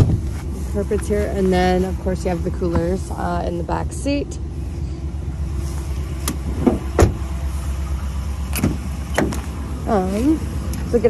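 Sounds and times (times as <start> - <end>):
low steady rumble: 0.0 - 11.0
truck door knocks: 6.3 - 7.2, 8.6 - 9.5.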